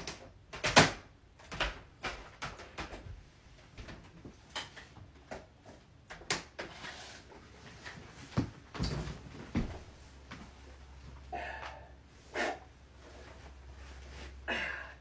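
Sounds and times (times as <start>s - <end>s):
knocks and scuffs on wooden floor: 8.2s - 10.6s.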